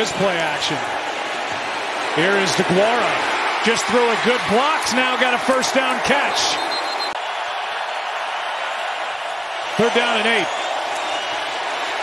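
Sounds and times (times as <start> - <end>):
crowd of spectators: 0.0 - 12.0.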